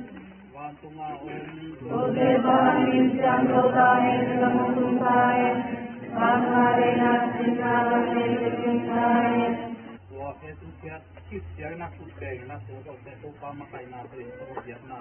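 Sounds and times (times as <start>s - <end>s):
crowd singing in unison: 1.3s - 10.0s.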